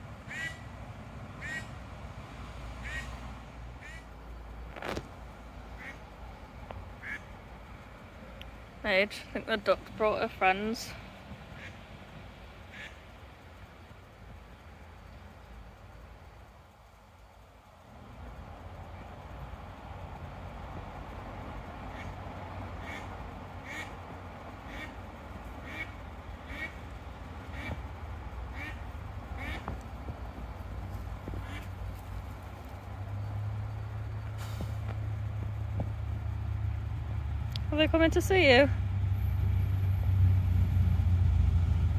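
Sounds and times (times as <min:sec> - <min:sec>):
ducks quacking: 0:00.3 - 0:00.7, 0:01.4 - 0:01.8, 0:02.8 - 0:03.2, 0:03.8 - 0:04.1, 0:05.8 - 0:06.0, 0:07.0 - 0:07.3, 0:11.5 - 0:11.8, 0:12.7 - 0:13.0, 0:21.9 - 0:22.2, 0:22.8 - 0:24.0, 0:24.6 - 0:25.0, 0:25.6 - 0:27.9, 0:28.5 - 0:29.7, 0:31.3 - 0:31.8.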